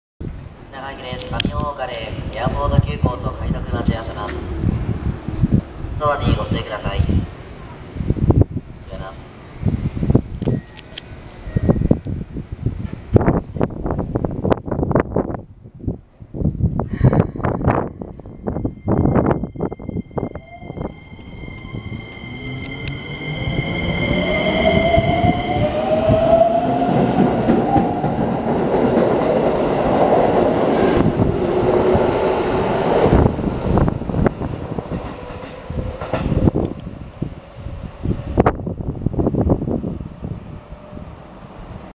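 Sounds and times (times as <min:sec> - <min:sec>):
electric train motors whining: 0:18.5 - 0:26.6.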